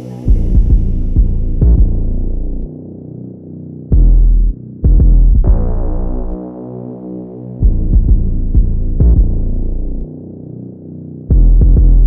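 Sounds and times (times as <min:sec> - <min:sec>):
held synth chords: 0:00.0 - 0:12.0
deep bass and drum hits: 0:00.3 - 0:02.7, 0:03.9 - 0:06.4, 0:07.6 - 0:10.1, 0:11.3 - 0:12.0.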